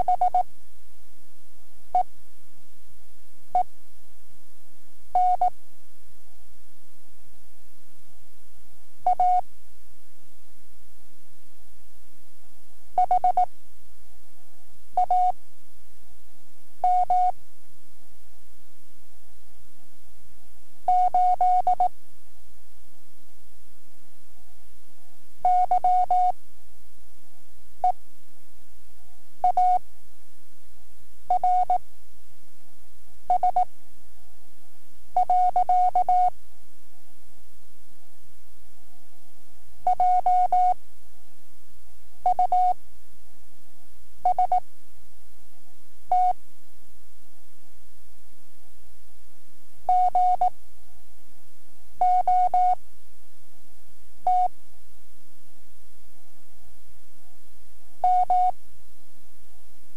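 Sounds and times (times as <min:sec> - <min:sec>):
steady low hum: 0:00.0 - 0:59.9
morse code tone: 0:44.3 - 0:44.6, 0:49.9 - 0:50.5, 0:52.0 - 0:52.8, 0:54.3 - 0:54.5, 0:58.0 - 0:58.5.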